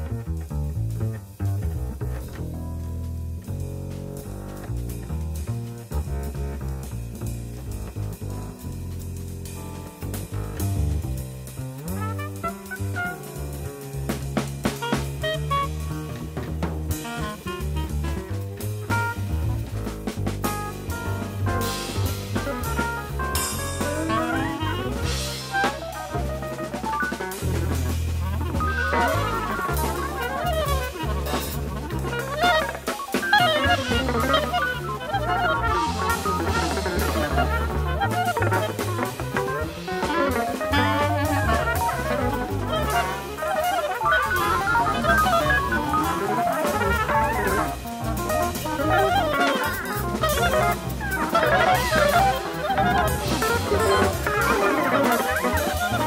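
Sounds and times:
jazz with drums and bass: 0.0s - 56.0s
fast winding melodic runs: 27.8s - 56.0s.

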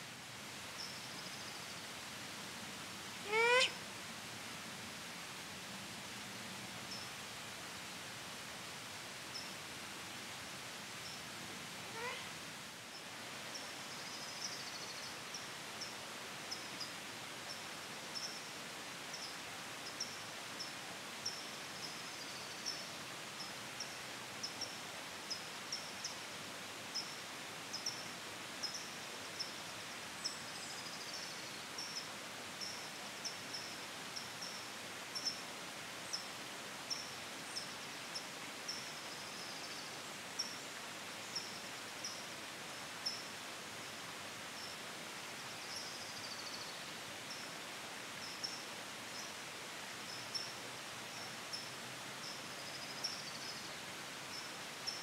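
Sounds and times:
steady outdoor hiss: 0.0s - 55.0s
slurred falling bird call: 3.2s - 3.8s, 11.9s - 12.3s.

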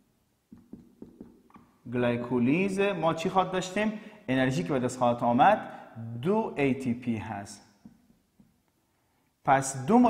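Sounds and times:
marker tapping and scratching: 0.5s - 1.8s.

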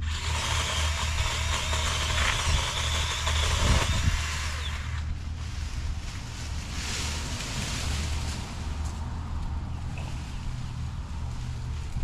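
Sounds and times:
pole saw whining: 0.0s - 5.2s
steady low rumble: 2.3s - 12.0s.

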